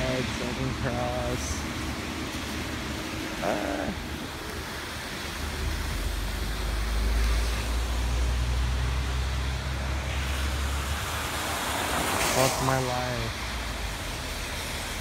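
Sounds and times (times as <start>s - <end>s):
deep traffic rumble: 0.0s - 15.0s
tyres hissing on wet road: 0.0s - 15.0s.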